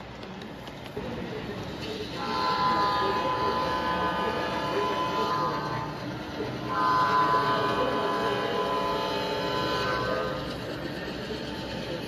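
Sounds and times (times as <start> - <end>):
model train wheels and motor rumble: 0.0 - 12.0
model locomotive horn: 2.0 - 12.0.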